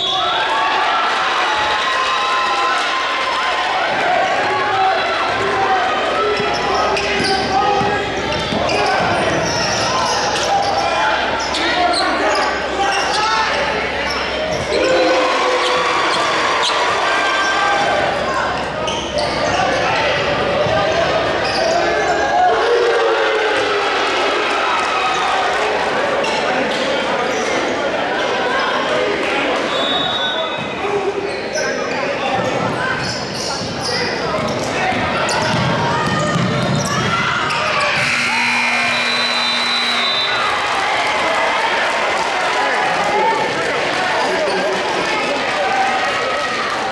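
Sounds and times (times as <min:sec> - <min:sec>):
crowd voices and shouting echoing: 0:00.0 - 0:46.9
basketball bouncing on court: 0:34.4 - 0:37.1.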